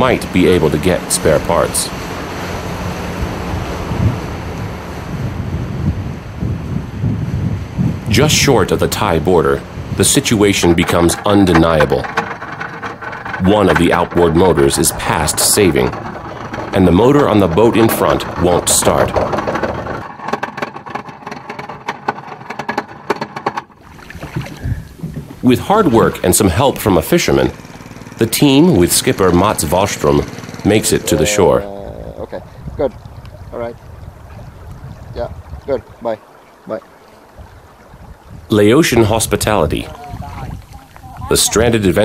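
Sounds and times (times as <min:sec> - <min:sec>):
wind buffeting microphone: 0:00.0 - 0:20.1, 0:23.8 - 0:42.0
water rushing past boat: 0:00.0 - 0:22.0, 0:23.7 - 0:42.0
outboard motor running: 0:00.0 - 0:42.0
sharp knocks and clicks: 0:08.9 - 0:30.7.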